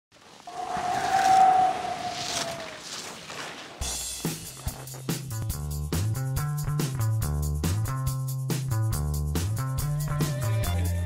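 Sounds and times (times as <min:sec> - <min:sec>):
skis hissing across snow: 0:00.2 - 0:05.1
music with a beat: 0:03.9 - 0:11.0.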